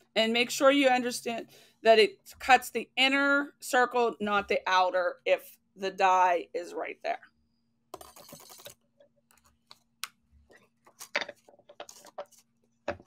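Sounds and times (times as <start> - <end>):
small objects clicking on a desk: 7.9 - 10.2.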